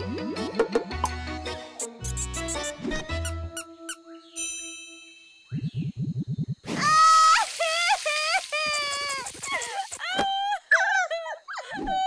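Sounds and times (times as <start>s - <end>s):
ringing chime tone: 4.3s - 5.6s.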